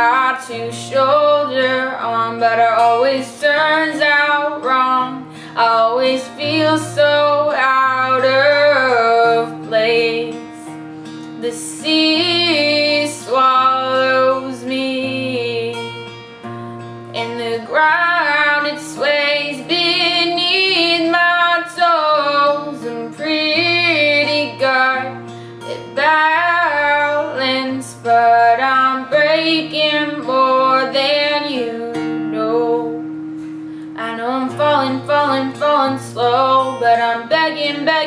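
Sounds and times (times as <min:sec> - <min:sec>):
strummed acoustic guitar: 0:00.0 - 0:38.0
woman singing: 0:00.0 - 0:38.0.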